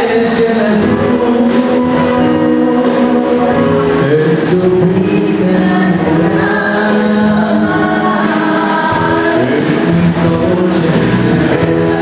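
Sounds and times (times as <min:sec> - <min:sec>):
electronic keyboard: 0:00.0 - 0:12.0
girl singing into microphone: 0:04.8 - 0:09.8.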